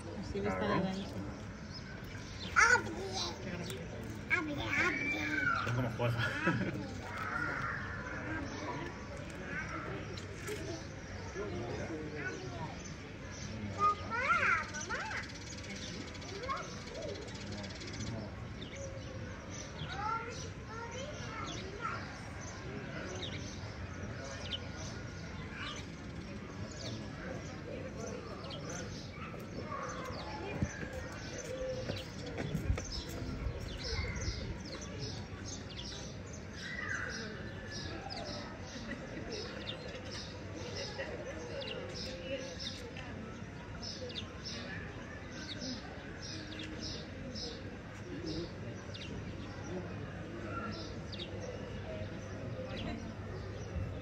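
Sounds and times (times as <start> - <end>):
people talking: 0.0 - 1.4, 2.5 - 18.8, 19.8 - 54.0
indistinct chatter of people: 0.0 - 54.0.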